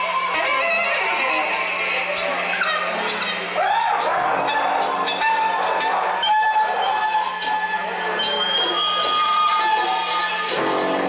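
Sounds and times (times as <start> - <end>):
live rock band playing: 9.1 - 11.0.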